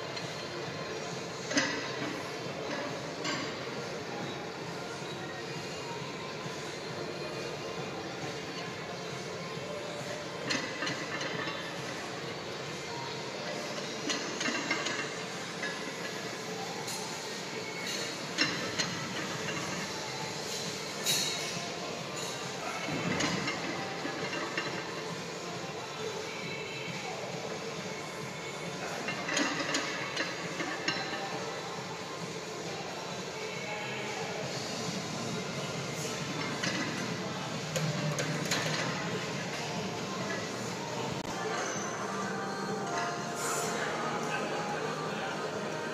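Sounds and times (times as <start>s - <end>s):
faint background music: 0.0s - 45.9s.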